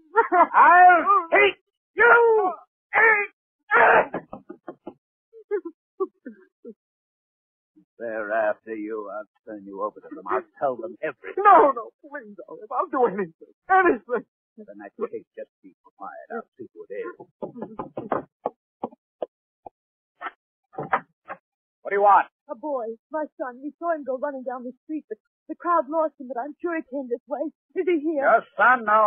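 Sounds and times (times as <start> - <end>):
boy crying out in pain: 2.0 - 4.2
boy sobbing: 3.7 - 4.3.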